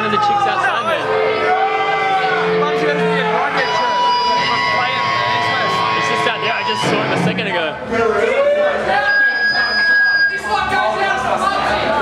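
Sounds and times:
crowd chatter: 0.0 - 12.0
steady held tone: 2.4 - 8.2.

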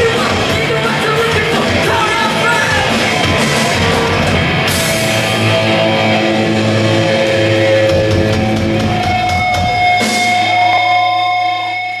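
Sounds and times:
punk band playing live: 0.0 - 12.0.

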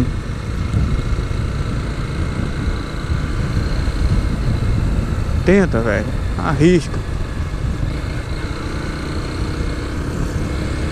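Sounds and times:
wind noise on microphone: 0.0 - 8.6, 9.5 - 10.9
motorcycle engine running: 0.0 - 10.9.

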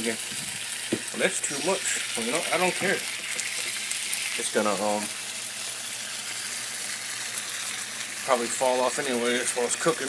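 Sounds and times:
sandwiches sizzling on griddle: 0.0 - 10.0.

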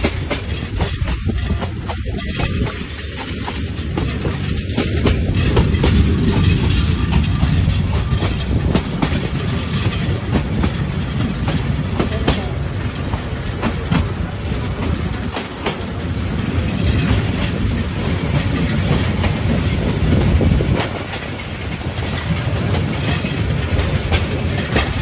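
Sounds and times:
train wheels rumbling on rails: 0.0 - 25.0
wheels clacking over rail joints: 0.0 - 25.0.

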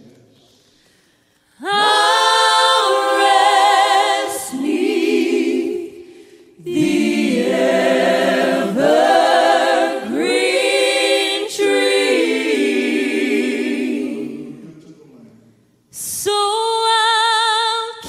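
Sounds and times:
group singing a hymn: 1.5 - 15.0.

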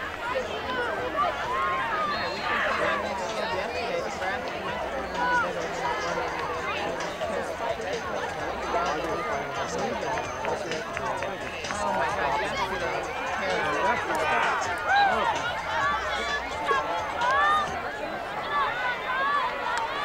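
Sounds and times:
people shouting: 0.0 - 3.6, 11.9 - 20.0
babble of many voices: 0.0 - 20.0.

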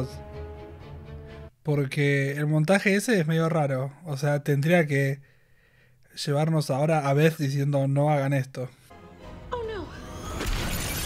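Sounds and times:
dramatic score: 8.9 - 11.0
shattering crash sound effect: 10.2 - 11.0.

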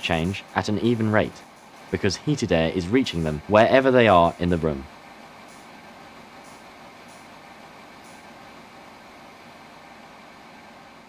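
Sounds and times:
fan heater air hiss: 0.0 - 11.0.

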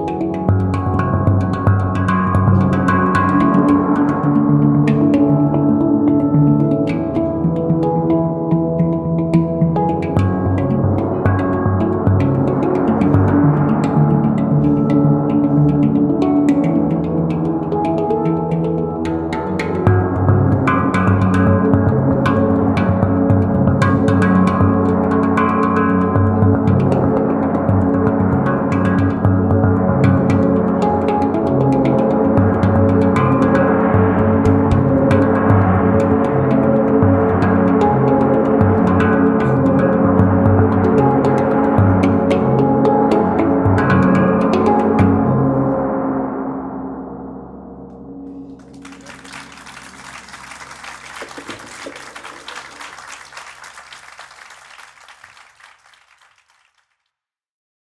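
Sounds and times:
handpan music: 0.0 - 45.8
pulsing low bass: 26.0 - 44.3
audience applause: 48.6 - 57.0.

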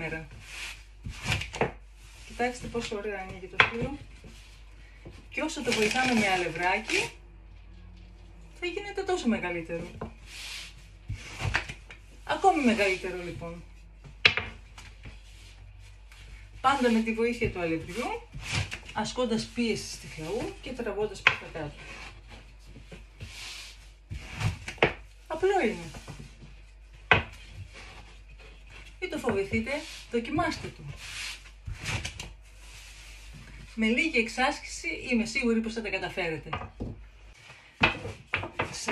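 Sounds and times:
rolling pin rubbing dough: 0.0 - 7.2, 9.4 - 34.1.

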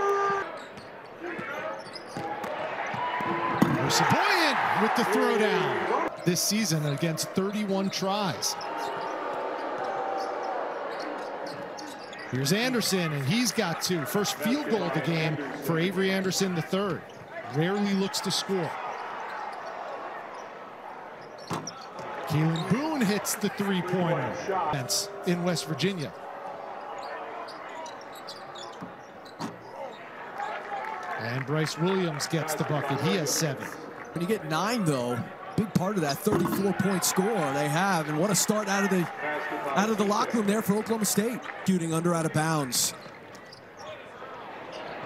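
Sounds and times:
arena crowd noise: 0.0 - 45.0.

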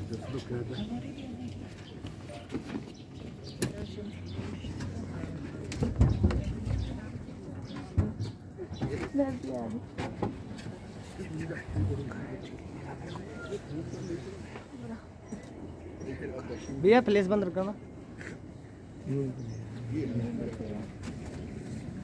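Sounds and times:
murmured voices: 0.0 - 22.0.

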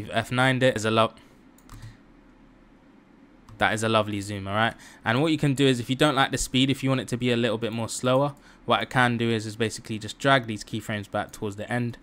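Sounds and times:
computer keyboard clicks: 1.6 - 2.0.

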